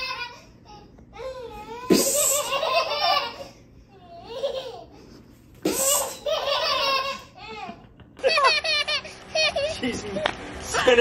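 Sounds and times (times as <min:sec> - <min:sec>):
baby laughing: 0:00.0 - 0:09.9.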